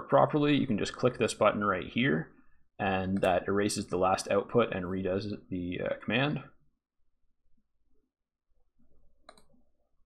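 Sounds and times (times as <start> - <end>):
faint computer mouse click: 9.2 - 9.6.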